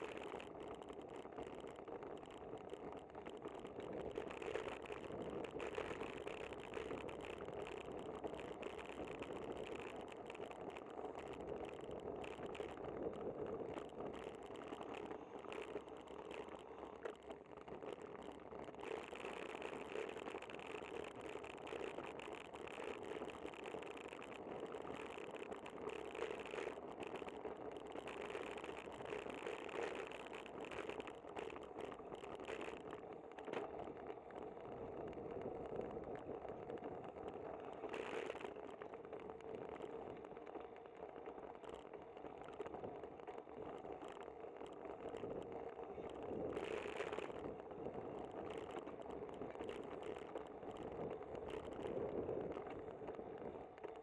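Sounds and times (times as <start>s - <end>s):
bicycle rattle: 0.0s - 54.0s.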